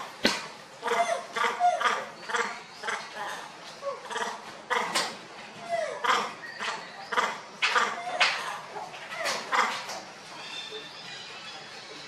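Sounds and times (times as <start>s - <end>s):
macaques giving high calls: 0.8s - 12.0s.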